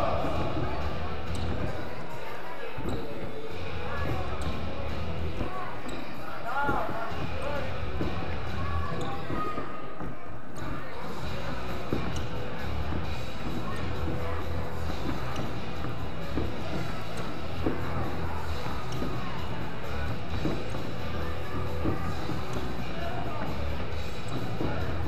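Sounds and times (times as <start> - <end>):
voices calling in echoing hall: 0.0 - 25.0.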